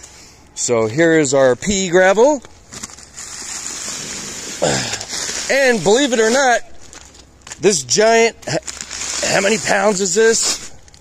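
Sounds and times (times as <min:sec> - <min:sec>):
plastic wrapping rustling: 0:01.7 - 0:11.0.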